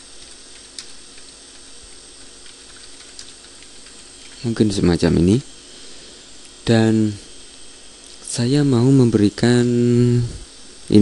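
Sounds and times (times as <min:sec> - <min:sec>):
faint keyboard typing: 0:00.0 - 0:04.5
steady background hiss: 0:00.0 - 0:11.0.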